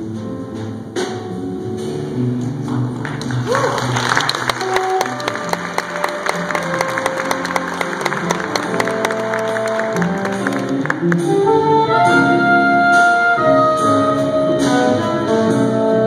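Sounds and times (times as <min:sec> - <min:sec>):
audience applauding: 0:03.0 - 0:11.3
jazz quintet playing: 0:03.9 - 0:16.0.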